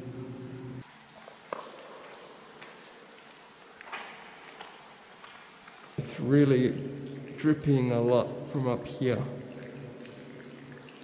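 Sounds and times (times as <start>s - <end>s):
low steady hum: 0.0s - 0.8s.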